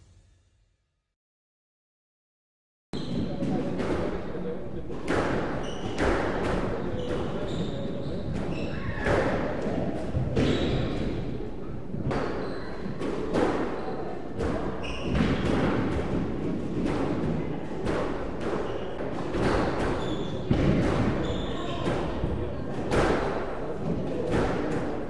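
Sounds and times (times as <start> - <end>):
squash ball thuds and bounces: 14.4 - 24.8.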